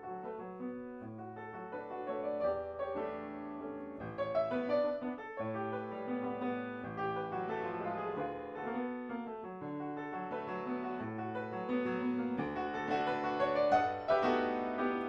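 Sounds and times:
slow solo piano: 0:00.0 - 0:15.0.

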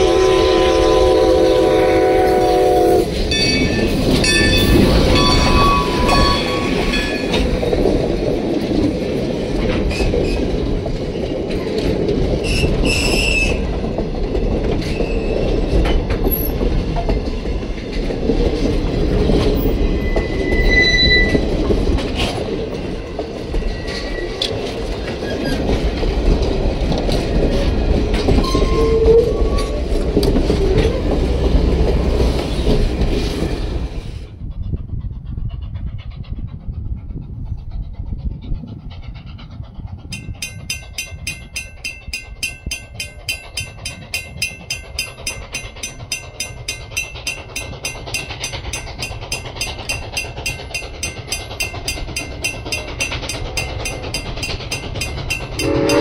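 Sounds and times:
steam locomotive whistle: 0:00.0 - 0:03.6, 0:04.6 - 0:07.0, 0:20.0 - 0:21.4, 0:55.6 - 0:56.0
crossing bell ringing: 0:00.0 - 0:08.0, 0:40.2 - 0:56.0
train rumbling past: 0:00.0 - 0:56.0
wheels clacking over rail joints: 0:02.2 - 0:33.8, 0:39.2 - 0:56.0.

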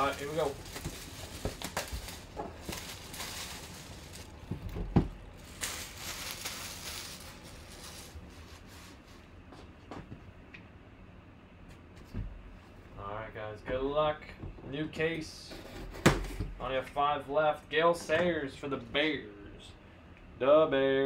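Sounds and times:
cardboard rustling and sliding: 0:00.0 - 0:09.2.

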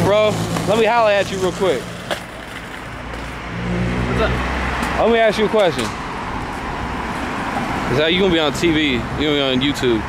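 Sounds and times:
car engine hum approaching: 0:00.0 - 0:10.0
steady traffic noise: 0:00.0 - 0:10.0.

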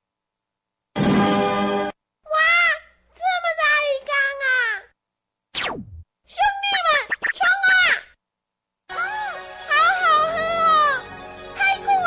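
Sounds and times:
background music: 0:01.0 - 0:02.0, 0:08.9 - 0:12.0.

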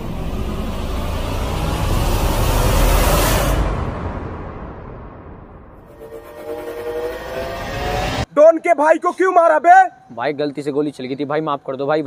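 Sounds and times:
rising horn-like tone: 0:00.0 - 0:08.3
rush of noise: 0:00.0 - 0:08.3.

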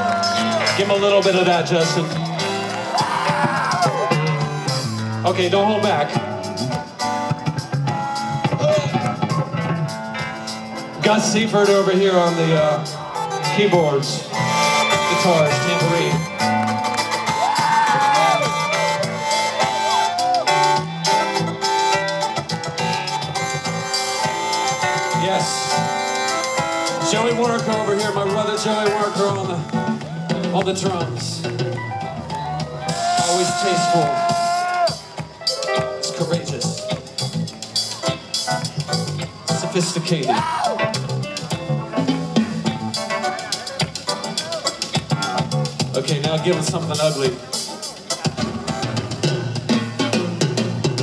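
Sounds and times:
bass guitar: 0:00.0 - 0:51.0
live rock band: 0:00.0 - 0:51.0.

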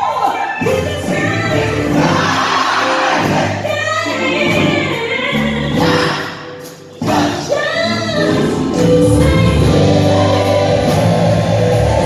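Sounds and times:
gospel choir singing: 0:00.0 - 0:12.0
woman singing lead: 0:00.0 - 0:12.0.

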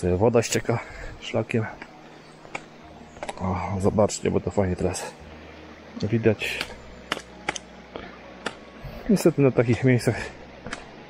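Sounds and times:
trekking poles clicking on rocks: 0:01.6 - 0:03.6, 0:06.4 - 0:11.0.

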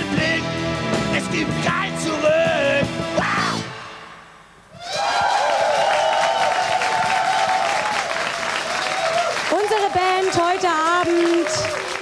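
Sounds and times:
audience applauding: 0:04.9 - 0:12.0.

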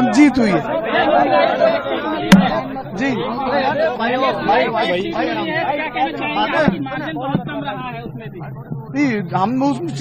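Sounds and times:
men talking over one another: 0:00.0 - 0:10.0
sharp knock: 0:02.3 - 0:03.1.

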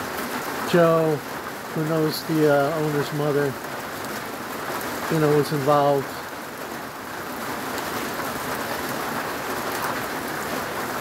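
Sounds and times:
rain on a metal roof: 0:00.0 - 0:11.0.

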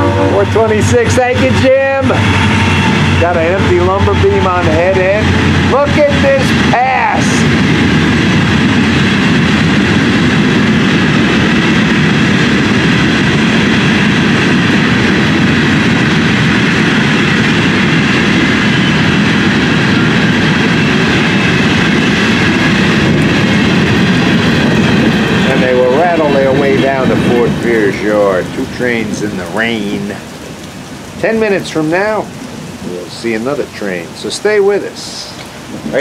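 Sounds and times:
freight train wheels rumbling: 0:00.0 - 0:36.0.

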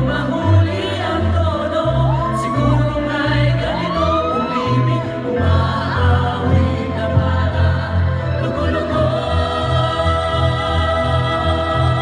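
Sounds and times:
choir singing: 0:00.0 - 0:12.0
solo voices singing: 0:00.0 - 0:12.0.

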